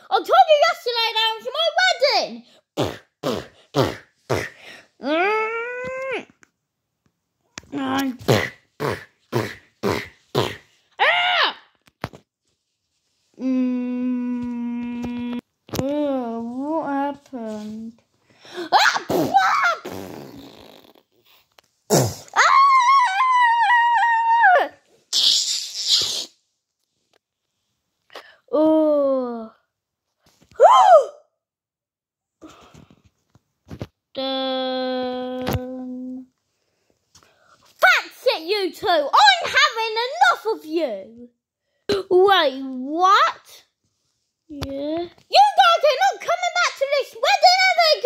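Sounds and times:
child grunting: 18.6 - 20.1
person squealing: 18.6 - 20.8, 21.9 - 26.3
child wailing cry: 22.4 - 24.8.

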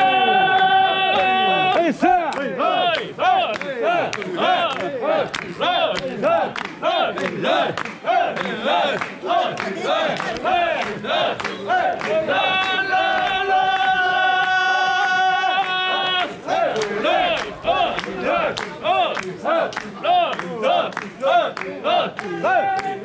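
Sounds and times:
crowd shouting rhythmic chant: 0.0 - 23.0.

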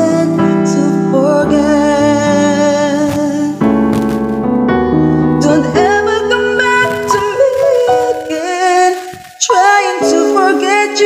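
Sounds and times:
person singing: 0.0 - 4.1, 5.4 - 11.0
backing track with keyboard: 0.0 - 11.0.

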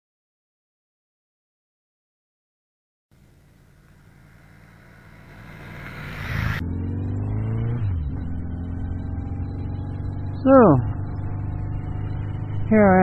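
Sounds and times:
rushing noise: 3.2 - 8.3
motorcycle engine accelerating: 3.2 - 13.0.

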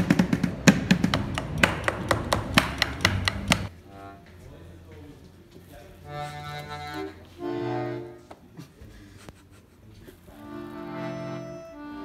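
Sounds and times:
accordion buttons clicking: 1.1 - 3.7
button accordion chord: 6.0 - 8.3, 10.3 - 12.0.

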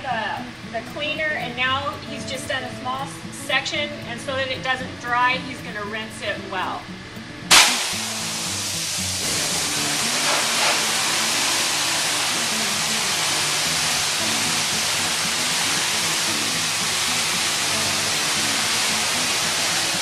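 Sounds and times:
background music: 0.0 - 20.0
pressure washer spraying water: 7.5 - 20.0.

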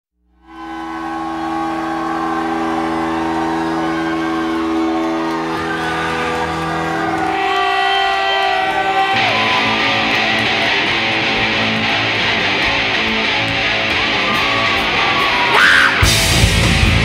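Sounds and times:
droning electric guitar chord: 0.7 - 7.4.

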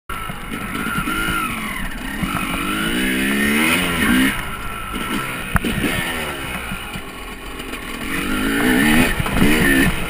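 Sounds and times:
motorcycle engine accelerating: 0.1 - 10.0.

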